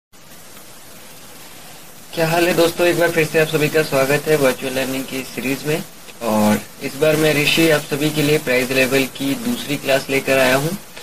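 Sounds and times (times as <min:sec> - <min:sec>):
steady background hiss: 0:00.1 - 0:11.0.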